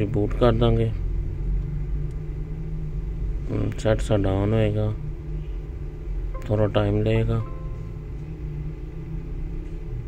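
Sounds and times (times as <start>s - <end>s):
low background rumble and hum: 0.0s - 10.0s.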